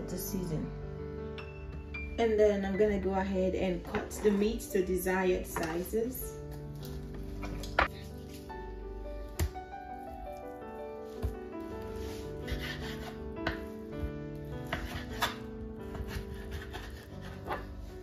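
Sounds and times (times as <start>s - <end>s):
gentle background music: 0.0s - 18.0s.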